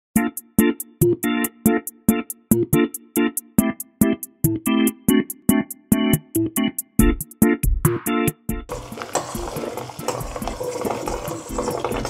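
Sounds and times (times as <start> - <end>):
pot of water boiling: 8.7 - 12.0.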